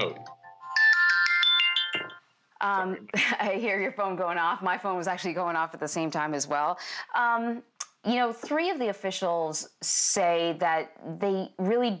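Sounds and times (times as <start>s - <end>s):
mobile phone ringtone: 0.0s - 2.3s.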